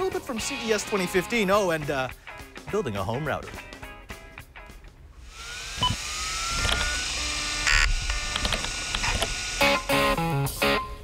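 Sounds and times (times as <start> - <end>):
clicks: 7.8 - 9.4.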